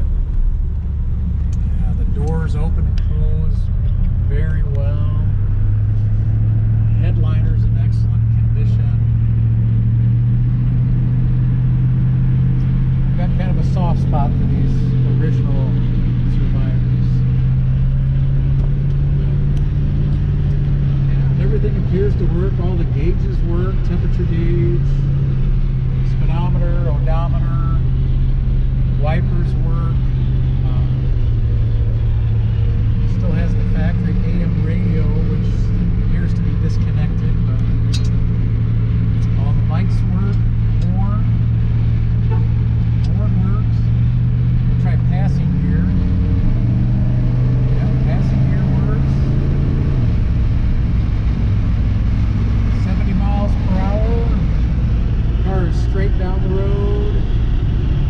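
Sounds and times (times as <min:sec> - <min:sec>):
car engine cruising: 0:00.0 - 0:58.0
road noise: 0:00.0 - 0:58.0.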